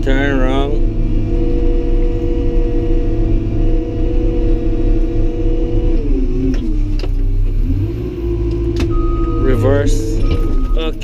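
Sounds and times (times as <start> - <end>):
bulldozer engine rumble and whine: 0.0 - 11.0.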